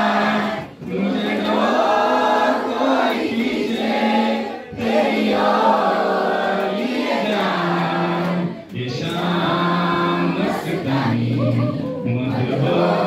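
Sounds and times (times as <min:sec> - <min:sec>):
man singing into a microphone: 0:08.7 - 0:13.0.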